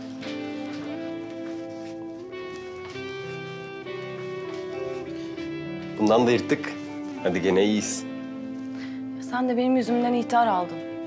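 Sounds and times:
guitar background music: 0.0s - 11.0s.

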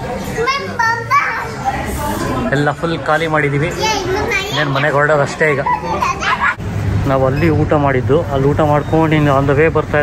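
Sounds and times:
restaurant chatter: 0.0s - 10.0s.

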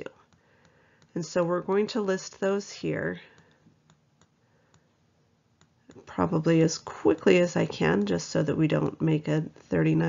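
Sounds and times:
stylus tapping on tablet screen: 3.3s - 5.0s, 5.6s - 9.0s.

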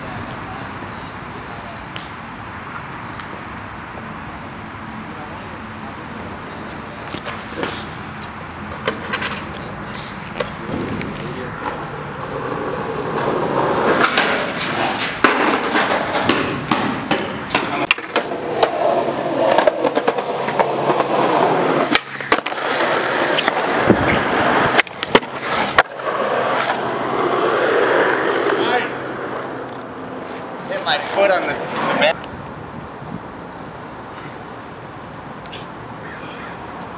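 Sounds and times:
skateboard wheels rolling on concrete: 0.0s - 36.9s
skateboard clacking on ground: 6.7s - 32.9s.

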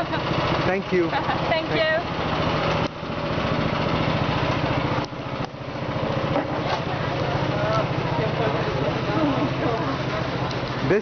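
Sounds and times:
small engine running: 0.0s - 11.0s.

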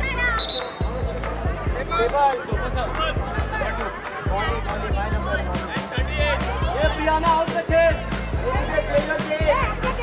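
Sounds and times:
referee's whistle blast: 0.4s - 0.9s.

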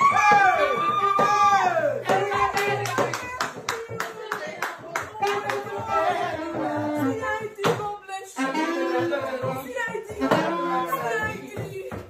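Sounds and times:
rhythmic handclaps: 0.0s - 12.0s.

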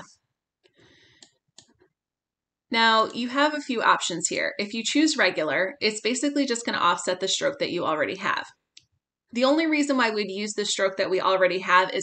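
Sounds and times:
computer mouse clicks: 0.6s - 1.9s.

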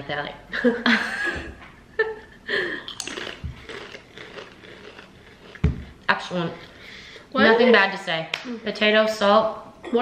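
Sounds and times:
potato chips being chewed: 2.9s - 6.0s.

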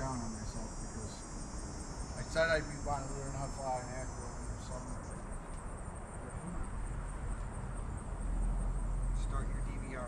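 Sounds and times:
high insect trill: 0.0s - 10.0s
outdoor background hiss: 0.0s - 10.0s.

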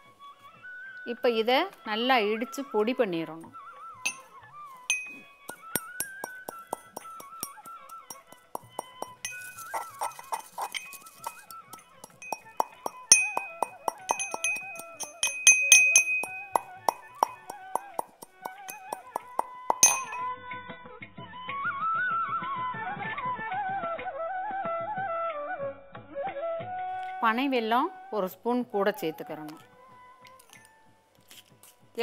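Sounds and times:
instrumental music: 4.9s - 20.3s
pestle clinking in steel mortar: 4.9s - 20.3s.

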